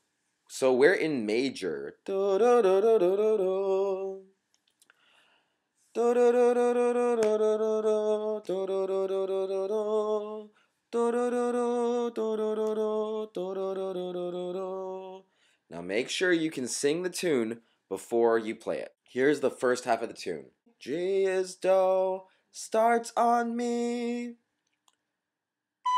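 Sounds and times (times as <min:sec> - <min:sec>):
man singing wordless phrases: 0:00.5 - 0:04.3, 0:06.0 - 0:24.4.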